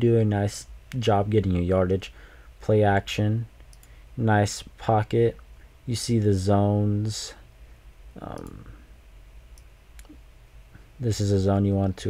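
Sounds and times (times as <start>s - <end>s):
faint low hum: 0.0s - 12.0s
computer mouse click: 3.6s - 4.0s, 8.3s - 8.6s, 9.6s - 10.2s.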